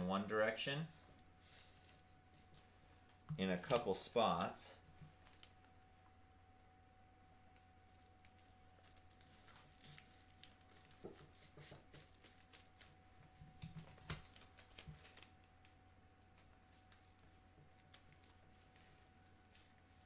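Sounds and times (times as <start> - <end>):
faint steady hum: 0.0 - 20.0
tape crinkling on foil: 5.1 - 5.9, 7.5 - 13.0, 13.8 - 20.0.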